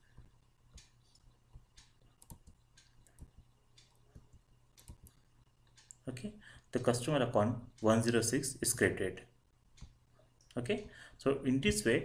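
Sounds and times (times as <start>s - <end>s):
keyboard and mouse clicks: 0.2s - 6.0s, 9.8s - 10.6s.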